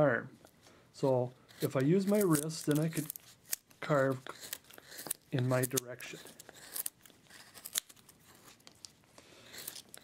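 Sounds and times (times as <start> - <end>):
chisel cutting wood: 1.1 - 8.5, 9.4 - 10.0.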